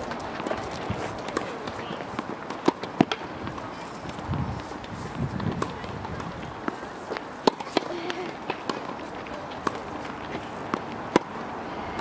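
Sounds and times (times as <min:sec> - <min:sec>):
tennis balls struck and bouncing: 0:00.0 - 0:12.0.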